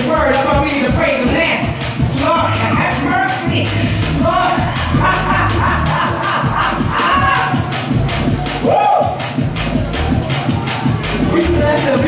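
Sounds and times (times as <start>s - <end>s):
gospel music with fast beat: 0.0s - 12.0s.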